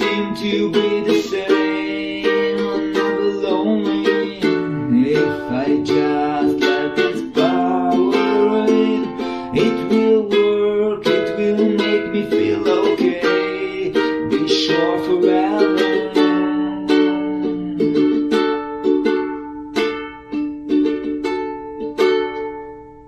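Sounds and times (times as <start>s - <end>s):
ukulele strumming chords: 0.0s - 23.0s.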